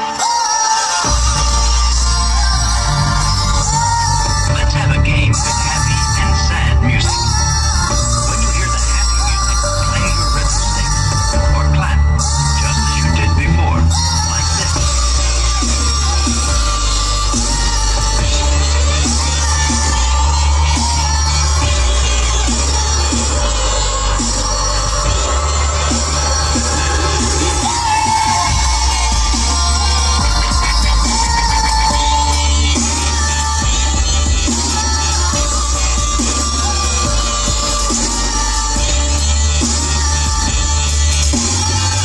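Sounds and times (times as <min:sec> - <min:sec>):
electronic music on car stereo: 0:00.0 - 0:42.0
deep bass: 0:01.0 - 0:42.0.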